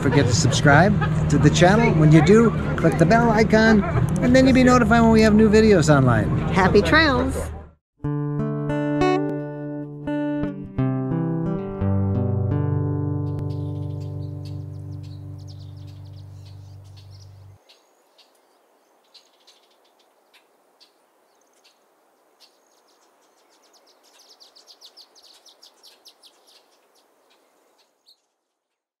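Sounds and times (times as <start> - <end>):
guitar music: 8.0 - 17.6
faint birds chirping: 12.8 - 29.0.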